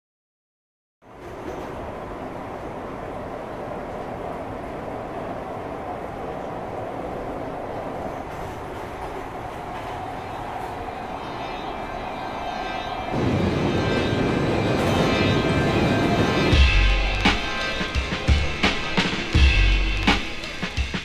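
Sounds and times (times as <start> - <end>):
train rumble: 1.0 - 21.0
faint whine: 9.7 - 19.5.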